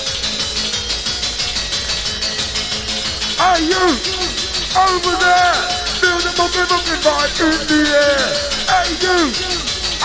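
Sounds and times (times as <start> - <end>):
fast dance music: 0.0 - 10.0.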